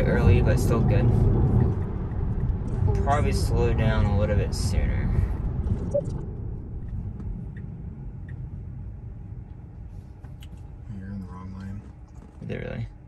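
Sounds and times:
road and tyre rumble in car: 0.0 - 13.0.

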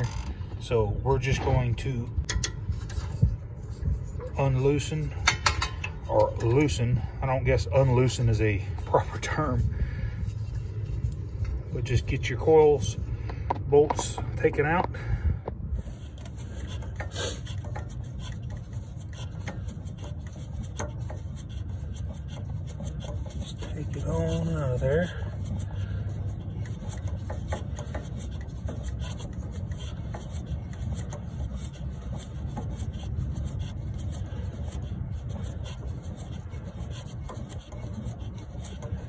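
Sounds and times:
steady low hum: 0.0 - 39.0
wrench knocking: 2.3 - 2.6, 5.2 - 6.6.

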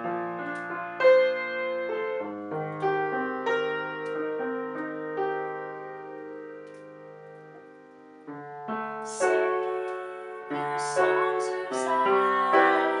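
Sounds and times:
piano playing slow chords: 0.0 - 13.0
woman singing: 9.1 - 13.0.

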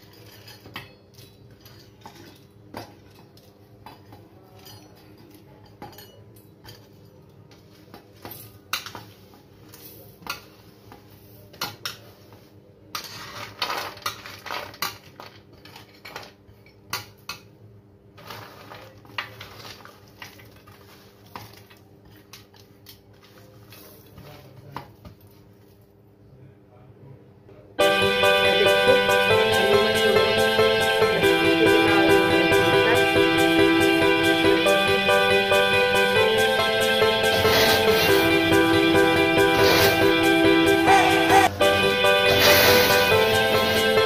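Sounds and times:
spices swept across steel tray: 37.3 - 38.4, 39.4 - 40.2, 42.2 - 44.0.

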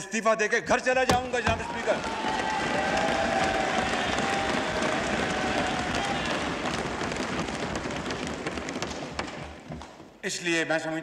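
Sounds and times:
crowd applauding: 1.4 - 9.4.

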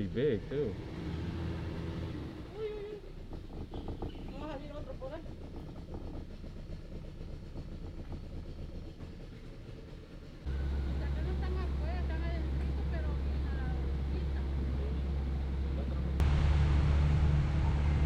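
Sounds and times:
outboard motor drone: 0.0 - 18.0.

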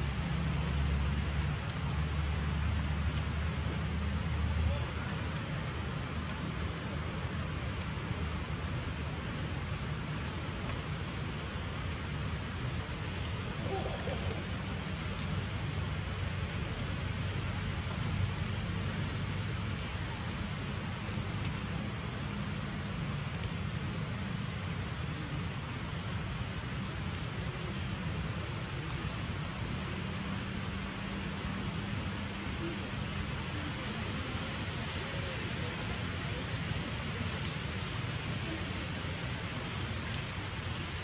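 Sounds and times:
even hiss: 0.0 - 41.0.

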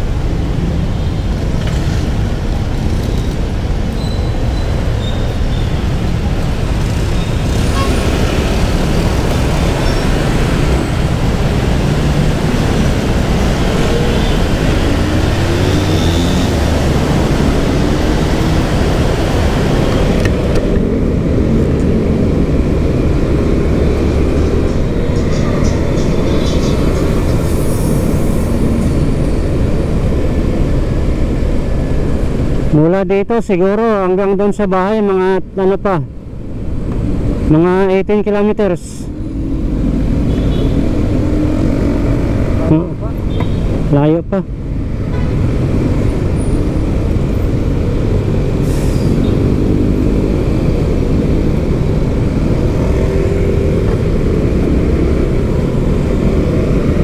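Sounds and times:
wind and road noise: 0.0 - 57.0.

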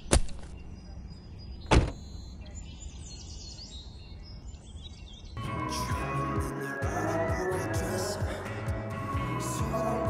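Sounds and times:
birds chirping faintly: 0.0 - 5.8
car door shutting: 1.7 - 2.1.

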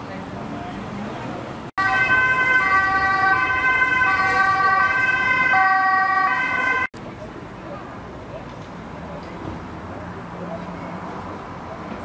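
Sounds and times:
two-tone siren: 1.8 - 6.9.

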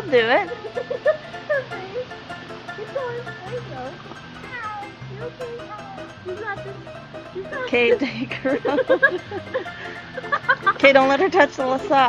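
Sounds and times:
music playing: 0.0 - 12.0
cat meowing: 4.4 - 6.1.

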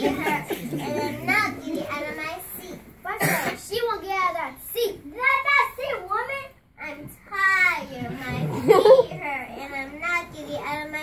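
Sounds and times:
child sing-song speaking: 0.0 - 11.0.

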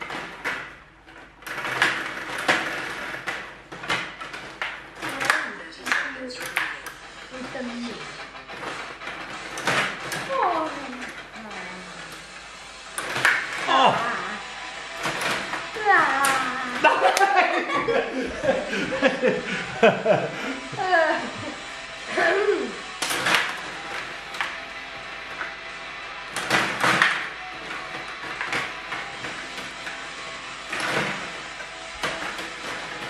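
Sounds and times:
table hockey rods clicking: 0.0 - 33.0
person calling out: 13.7 - 14.4.

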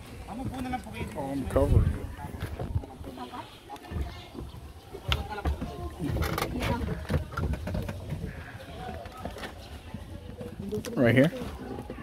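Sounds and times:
footsteps on wooden boat floor: 0.0 - 12.0
voices in background: 0.0 - 12.0.

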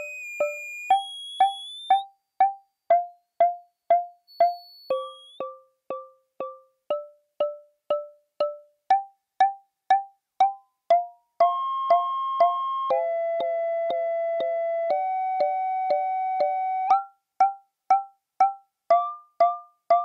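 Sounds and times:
pitched percussive synth pings: 0.0 - 20.0.

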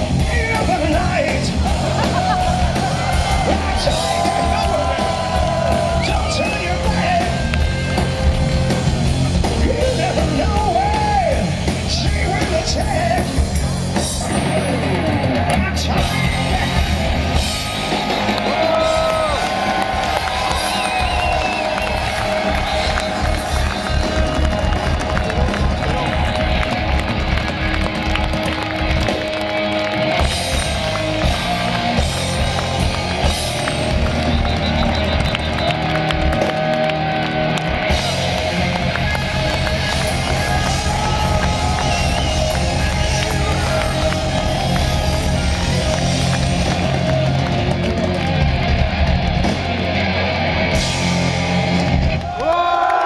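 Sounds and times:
steady drum beat: 0.0 - 52.3
hard rock band playing: 0.0 - 52.4
bass guitar: 0.0 - 53.0
electric guitars: 0.0 - 53.0.

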